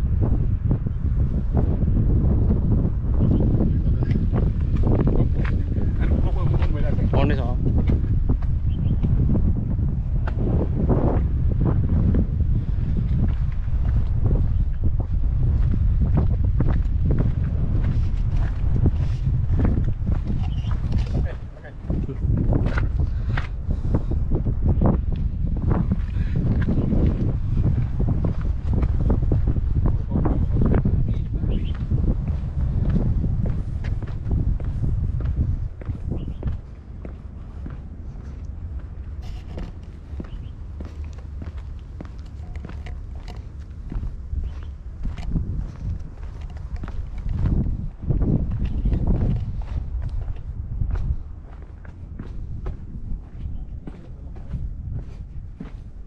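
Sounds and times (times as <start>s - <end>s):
wind buffeting microphone: 0.0s - 56.0s
footsteps on concrete: 4.0s - 56.0s.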